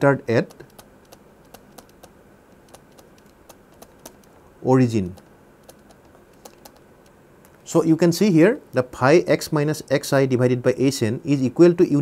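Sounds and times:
low hiss: 0.0s - 12.0s
stylus tapping on tablet screen: 0.4s - 4.4s, 5.1s - 7.6s.

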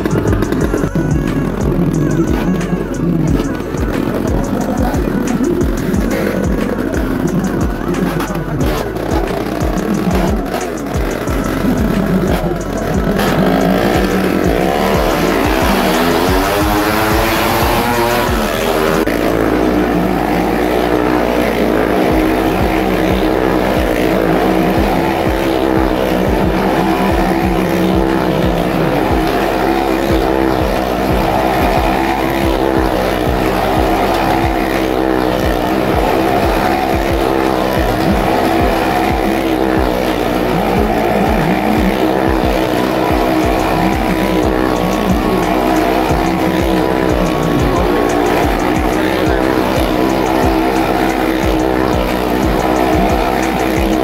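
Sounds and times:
motorcycle engines revving: 0.0s - 54.0s.

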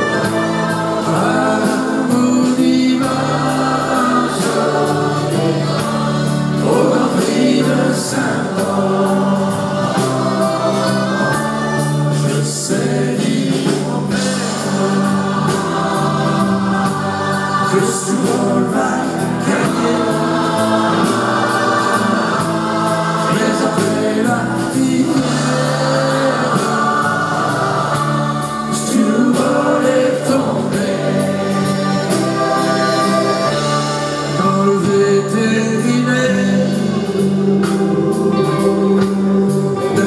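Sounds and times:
choir singing sustained notes: 0.0s - 36.0s
band with guitar and beat: 0.0s - 40.0s.

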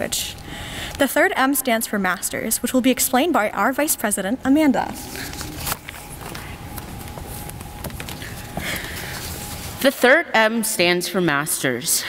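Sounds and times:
footsteps on a stage floor: 5.6s - 9.9s.

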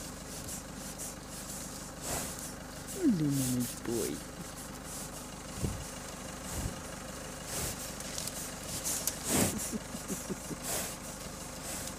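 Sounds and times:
horse breathing and sniffing: 0.0s - 11.9s.

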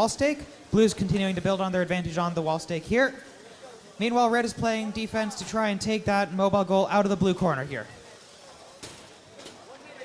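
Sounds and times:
hall background noise: 0.0s - 10.0s
faint voices: 2.7s - 10.0s.

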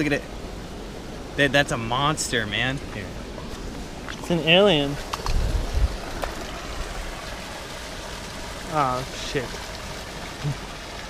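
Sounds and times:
flowing water rushing: 0.0s - 11.0s.

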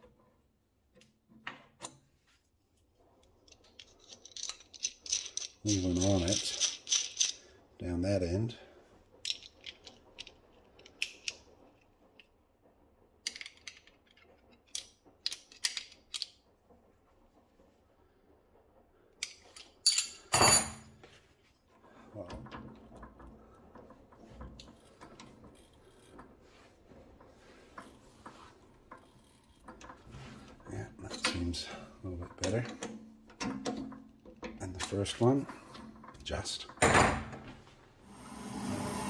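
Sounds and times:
chuck key scraping rattle: 3.4s - 7.5s
metal tools clicking and clinking: 3.4s - 7.5s, 9.2s - 11.4s, 19.2s - 20.9s.

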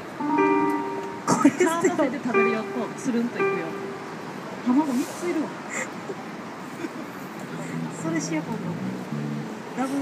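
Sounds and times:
outdoor street noise: 0.0s - 10.0s.

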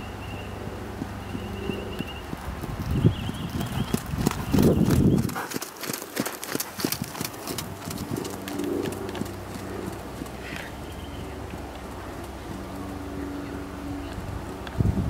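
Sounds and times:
horse hoofbeats on sand: 0.0s - 15.0s.

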